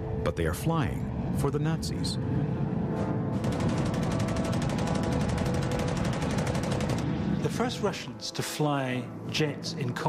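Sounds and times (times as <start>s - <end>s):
low steady drone: 0.0s - 10.0s
rapid machine-gun fire: 3.4s - 7.3s.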